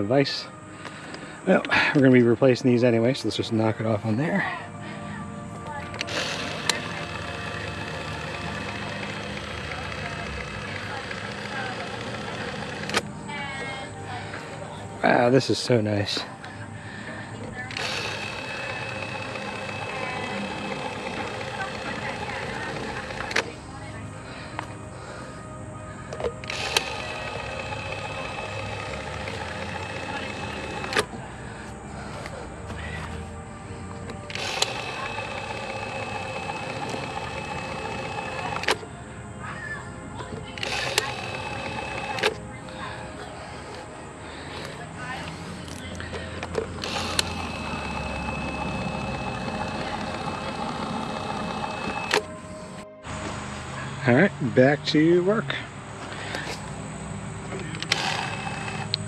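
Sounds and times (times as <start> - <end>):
caulk gun motor whining: 5.6 - 13.2, 17.5 - 23.6, 26.1 - 31.2, 33.9 - 38.9, 40.3 - 42.9, 45.3 - 52.5, 57.6 - 59.0.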